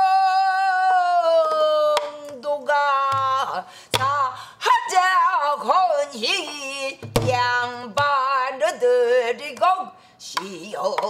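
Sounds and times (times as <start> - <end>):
stick striking barrel drum: 7.0 - 8.3.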